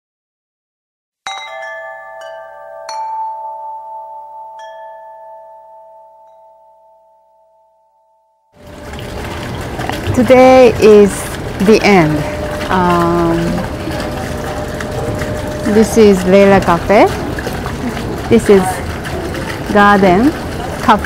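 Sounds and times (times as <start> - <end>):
bell-like chime jingle: 1.3 - 8.4.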